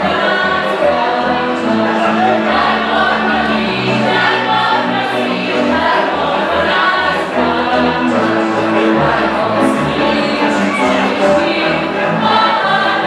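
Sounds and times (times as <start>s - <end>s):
group singing folk song in chorus: 0.0s - 13.0s
instrumental accompaniment: 0.0s - 13.0s.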